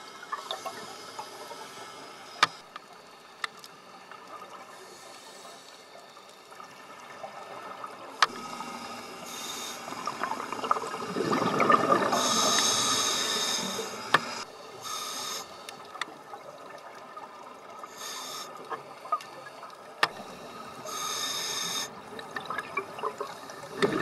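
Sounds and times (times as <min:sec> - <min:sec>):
underwater bubbling hiss: 0:00.0 - 0:24.0
exhaled regulator bubbles: 0:07.3 - 0:14.5, 0:21.7 - 0:24.0.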